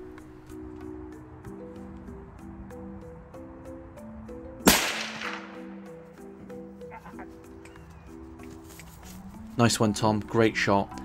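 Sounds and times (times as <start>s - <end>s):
background music with held notes: 0.0s - 11.0s
rifle shot with echo: 4.7s - 5.7s.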